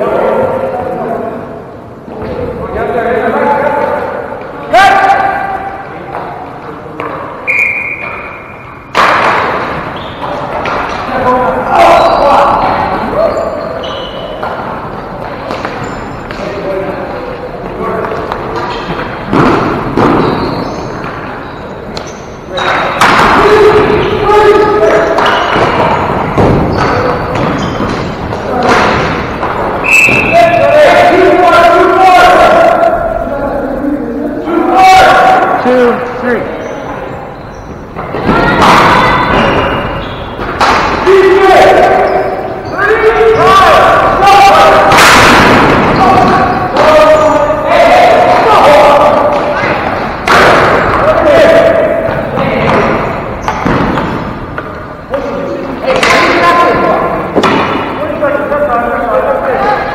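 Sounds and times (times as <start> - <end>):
players shouting in echoing gym: 0.0 - 59.9
sticks and ball hitting floor: 6.1 - 7.3, 8.9 - 12.4, 13.8 - 16.6, 17.6 - 21.3, 21.9 - 31.5, 38.0 - 42.2, 42.8 - 58.0
loud thud of ball or stick: 44.9 - 46.9, 57.4 - 57.9.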